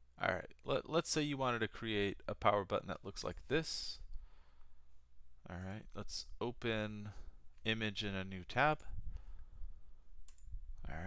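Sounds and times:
computer mouse click: 10.2s - 10.5s.

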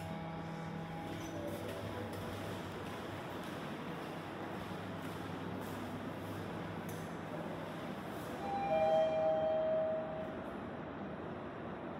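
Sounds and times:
steady hum: 0.0s - 11.9s
elevator two-note chime: 8.4s - 10.4s.

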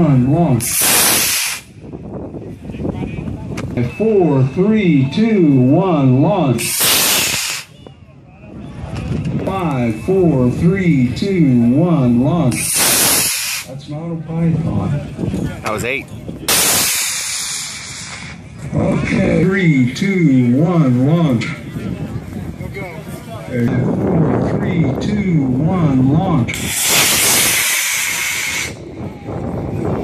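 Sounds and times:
wind noise on microphone: 0.0s - 30.0s.

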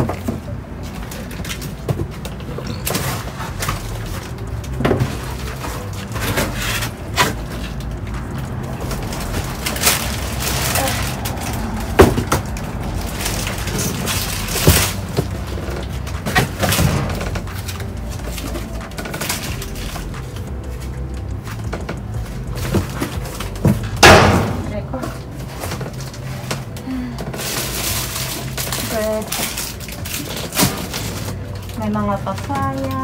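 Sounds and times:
boxes and bags rustling and knocking: 0.0s - 33.0s.

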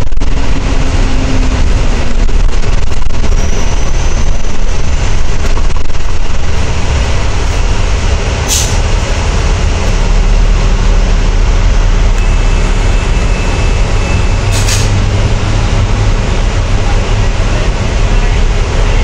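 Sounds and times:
bus diesel engine running: 0.0s - 19.0s
road noise: 0.0s - 19.0s
short air hisses: 8.5s - 8.9s, 14.5s - 15.0s.

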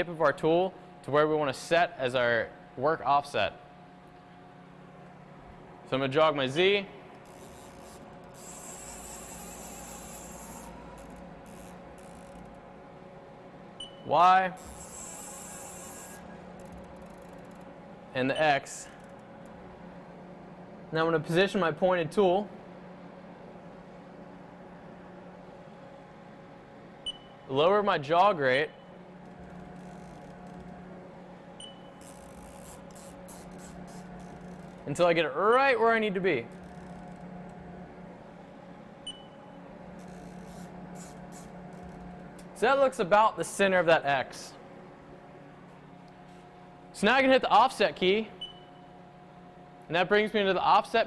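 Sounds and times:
faint steady machine hum: 0.0s - 51.0s
high thin whine: 6.3s - 12.5s, 14.0s - 16.4s.

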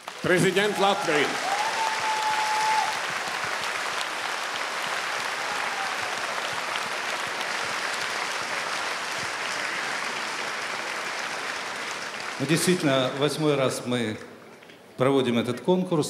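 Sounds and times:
audience applauding: 0.0s - 14.3s.

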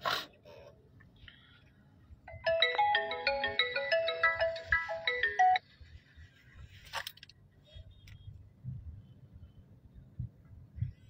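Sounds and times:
phone ringtone melody: 2.3s - 5.8s.

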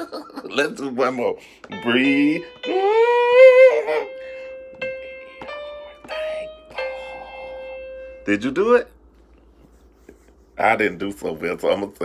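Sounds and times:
piano app single notes: 1.7s - 8.3s.

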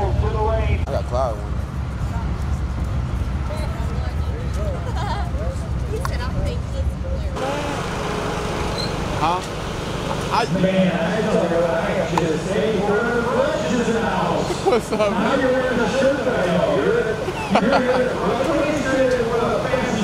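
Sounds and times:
indistinct chatter of voices: 0.0s - 20.0s.

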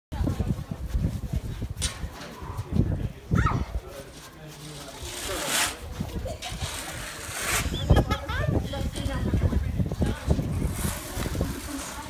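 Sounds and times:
scattered voices: 0.1s - 12.0s
hissing scrapes: 4.5s - 8.1s
people laughing: 6.0s - 8.6s.

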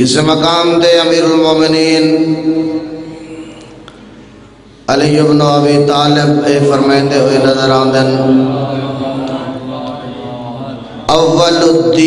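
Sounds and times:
man chanting a long note: 5.8s - 12.0s.

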